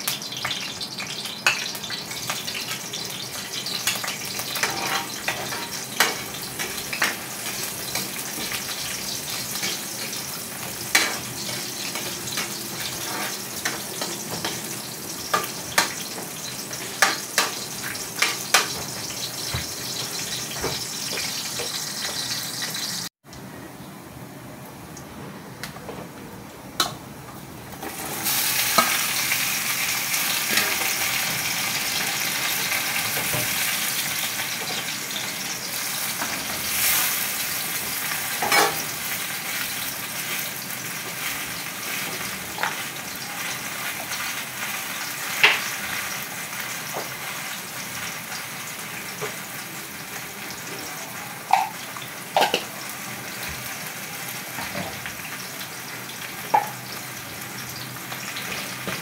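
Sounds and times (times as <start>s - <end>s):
vegetables sizzling in hot oil: 0.0s - 23.1s, 27.6s - 59.0s.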